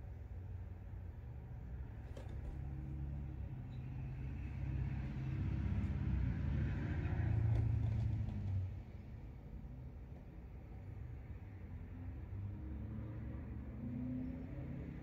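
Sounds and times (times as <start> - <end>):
motor vehicle rumble: 0.0 - 15.0.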